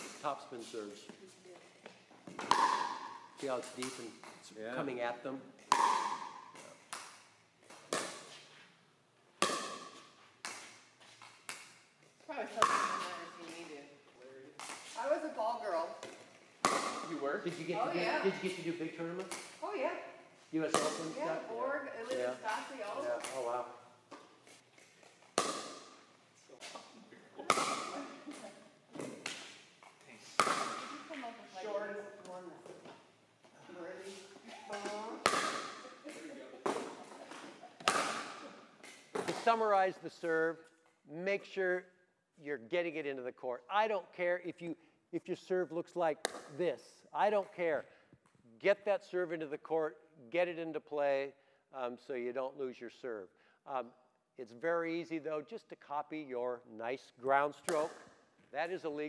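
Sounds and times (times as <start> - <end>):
balls landing on court: 1.8 - 4.5, 5.6 - 8.4, 9.4 - 10.8, 12.5 - 13.8, 14.6 - 15.1, 16.0 - 17.8, 19.1 - 19.6, 20.6 - 31.2, 34.6 - 39.6, 46.2 - 46.6, 57.6 - 58.2
paddles striking balls: 1.8 - 4.6, 5.6 - 8.4, 9.3 - 13.8, 14.5 - 15.3, 16.0 - 17.8, 18.5 - 19.9, 20.6 - 31.2, 34.6 - 39.7, 46.2 - 46.6, 57.6 - 58.3.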